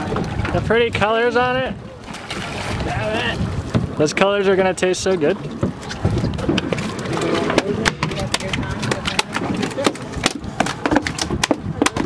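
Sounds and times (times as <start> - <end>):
fish flopping on deck: 2.0 - 4.0, 5.4 - 12.0.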